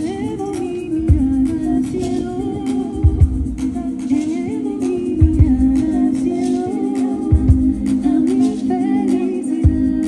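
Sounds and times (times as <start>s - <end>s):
low drum beats: 0.0s - 8.8s
wordless vocal melody: 0.0s - 10.0s.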